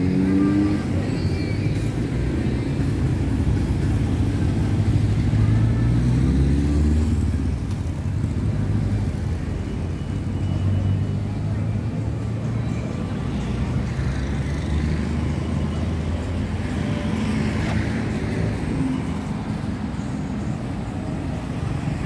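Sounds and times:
road traffic rumble: 0.0 - 22.0.

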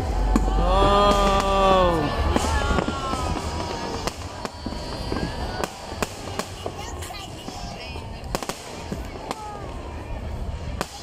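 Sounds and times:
continuous noisy background: 0.0 - 11.0
fireworks bangs: 0.0 - 11.0.

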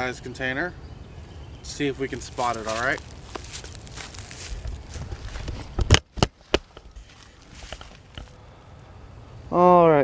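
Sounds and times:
footsteps crunching dry leaves: 1.7 - 8.4.

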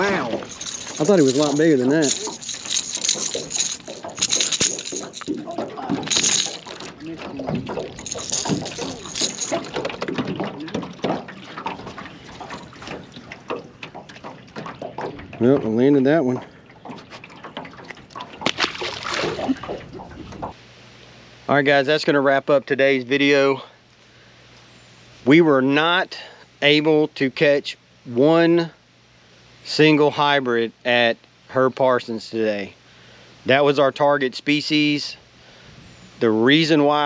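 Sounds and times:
lure rattling clicks: 0.4 - 6.9
water splash: 17.8 - 20.1.

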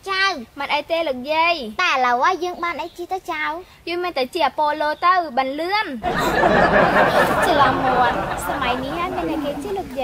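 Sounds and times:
voices chattering: 6.0 - 10.0.

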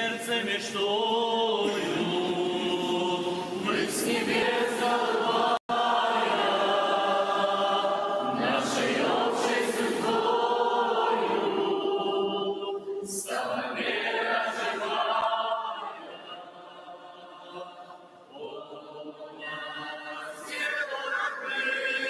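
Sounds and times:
choir and congregation singing hymn: 0.0 - 22.0.

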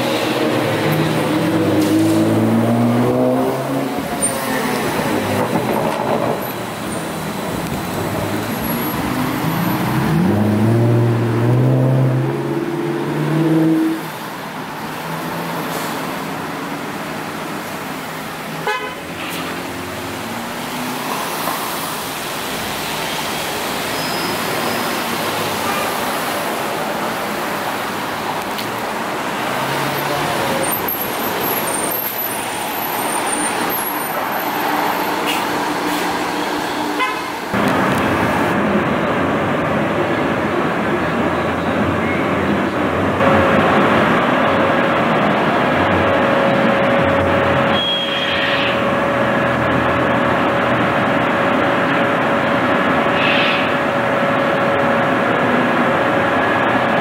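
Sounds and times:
cars and trolleybuses passing: 0.0 - 57.0
road noise: 0.0 - 57.0.

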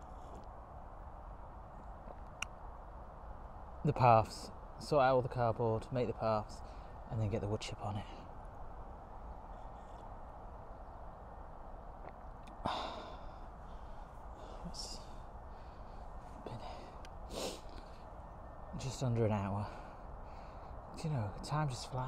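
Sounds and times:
low outdoor hiss: 0.0 - 22.0
man sighing: 12.6 - 13.4.

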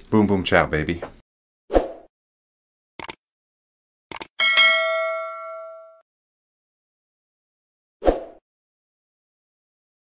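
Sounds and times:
quick clicks: 3.0 - 3.2, 4.1 - 4.3
bell strike ringing: 4.4 - 6.0.

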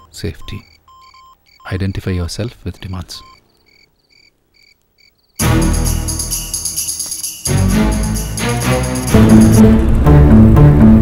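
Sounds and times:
high chirps: 2.8 - 9.6
loud music: 5.4 - 11.0.

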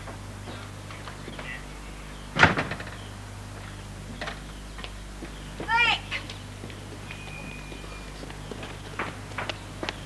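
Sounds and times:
front door slamming: 2.3 - 3.0.

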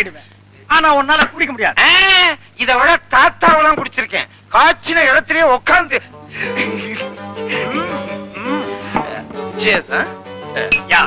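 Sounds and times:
men laughing loudly: 6.3 - 9.1.

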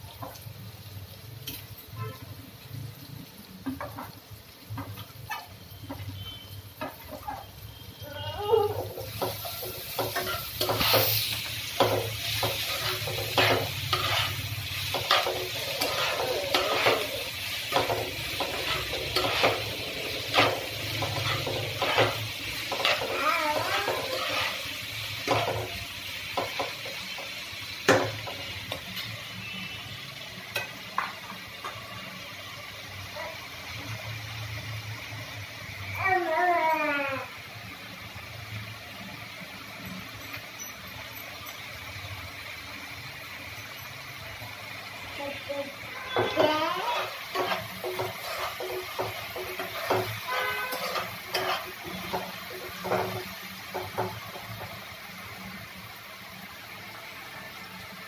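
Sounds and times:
onions sizzling in oil: 0.0 - 58.0
spatula scraping a pan: 8.7 - 27.3, 45.9 - 54.2.

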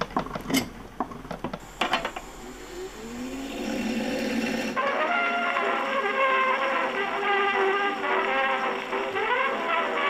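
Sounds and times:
phonograph music: 4.8 - 10.0.

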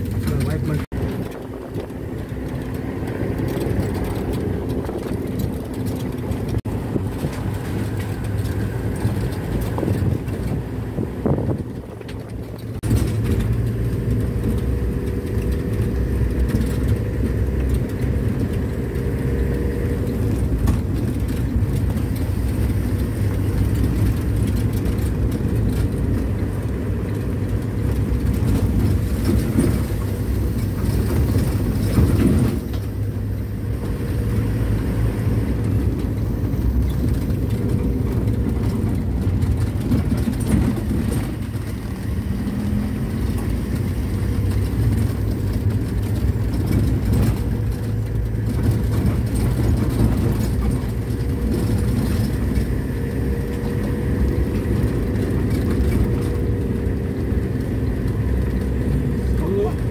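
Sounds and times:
vehicle engine and tyre rumble: 0.0 - 59.9.

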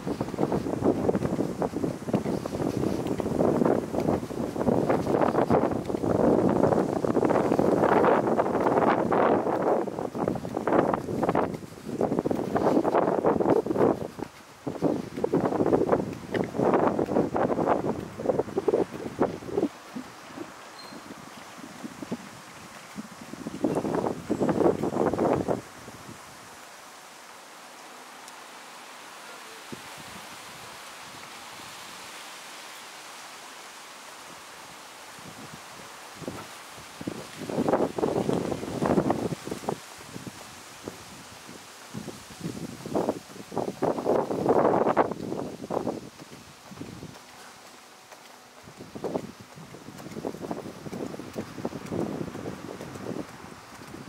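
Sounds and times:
wind on microphone: 0.0 - 27.1, 28.3 - 54.0
faint city ambience hiss: 0.0 - 54.0.

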